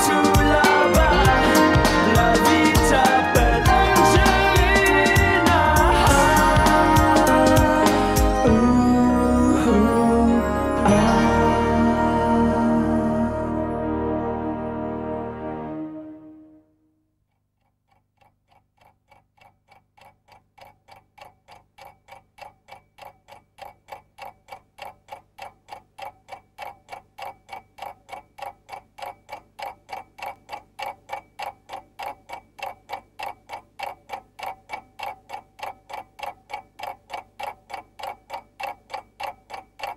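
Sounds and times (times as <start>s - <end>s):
clock-like ticking: 0.0s - 9.9s, 10.8s - 13.1s, 17.6s - 39.9s.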